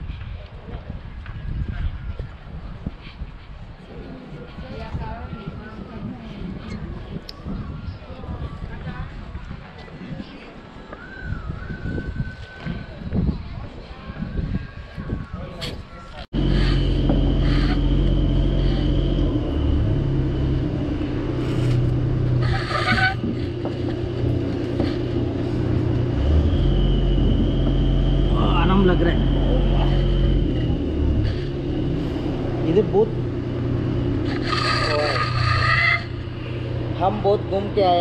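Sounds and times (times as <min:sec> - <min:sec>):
motor humming with high whine: 0:16.4 - 0:37.9.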